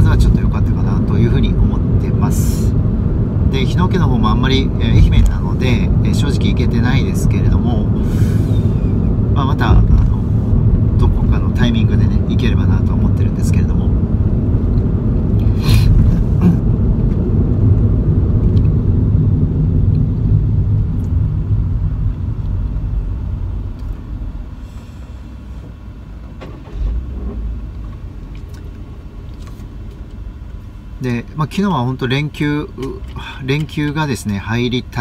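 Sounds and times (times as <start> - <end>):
car cabin road and engine rumble: 0.0 - 35.0
short thump: 4.9 - 5.4.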